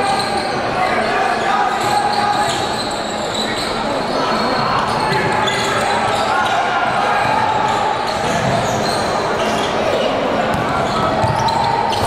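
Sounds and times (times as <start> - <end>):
murmur of voices echoing: 0.0 - 12.0
sneakers squeaking: 1.7 - 12.0.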